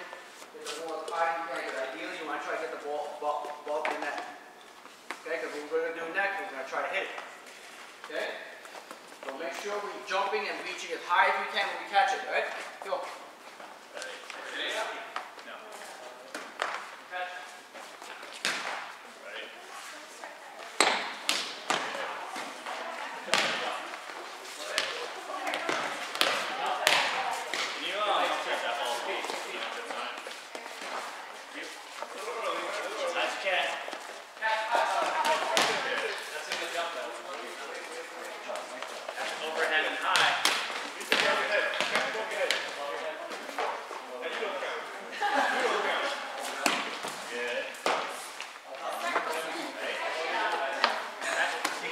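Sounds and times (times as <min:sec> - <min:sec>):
players talking and calling: 0:00.0 - 0:51.9
volleyballs bouncing on gym floor: 0:20.7 - 0:28.4, 0:35.0 - 0:36.8, 0:39.9 - 0:42.8.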